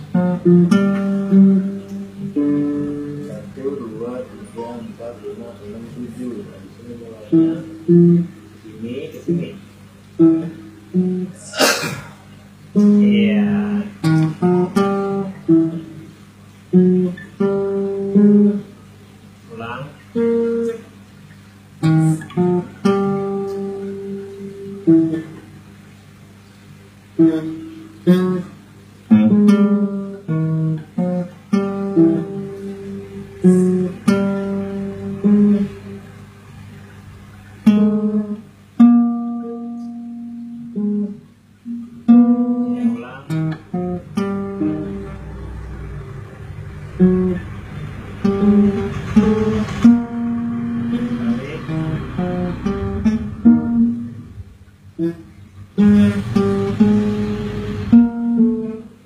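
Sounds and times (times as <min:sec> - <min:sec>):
guitar notes plucked: 0:00.0 - 0:59.0.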